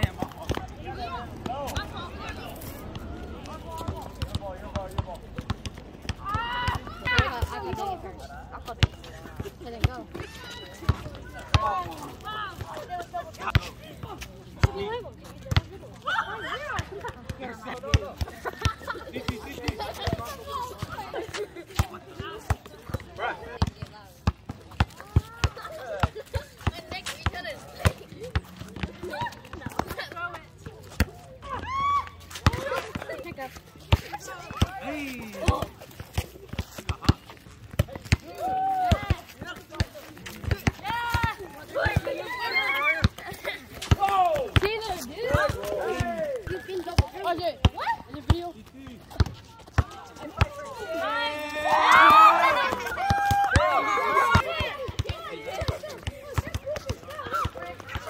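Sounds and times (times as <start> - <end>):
voices calling and shouting: 0.0 - 58.0.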